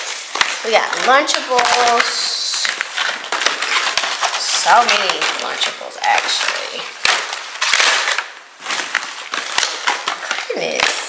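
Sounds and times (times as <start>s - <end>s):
plastic packs crinkling: 0.0s - 11.0s.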